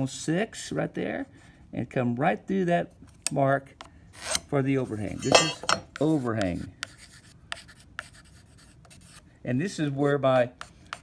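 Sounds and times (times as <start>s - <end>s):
pencil scratching on wood: 5.9s - 9.2s, 9.9s - 11.0s.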